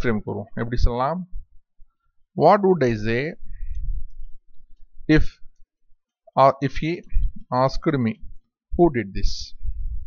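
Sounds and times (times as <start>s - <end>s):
man talking: 0.0s - 1.4s, 2.4s - 3.5s, 5.1s - 5.4s, 6.3s - 9.6s.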